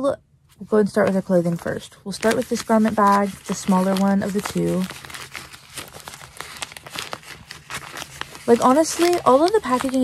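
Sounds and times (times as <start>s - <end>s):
packaging crinkling and rustling: 0.9s - 10.0s.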